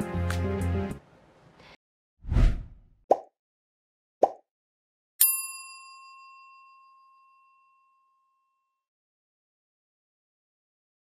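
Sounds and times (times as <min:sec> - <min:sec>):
notification bell ding: 0:05.2 - 0:08.2.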